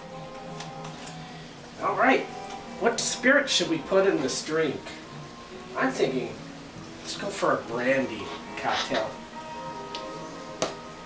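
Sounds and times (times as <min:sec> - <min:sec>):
background music held notes: 0:00.0 - 0:11.0.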